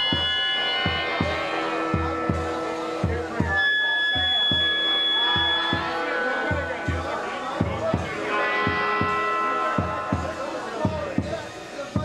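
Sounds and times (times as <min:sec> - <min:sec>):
bass drum beat: 0:00.0 - 0:03.6, 0:04.2 - 0:12.0
electric guitars: 0:00.0 - 0:12.0
melodica chords: 0:00.0 - 0:12.0.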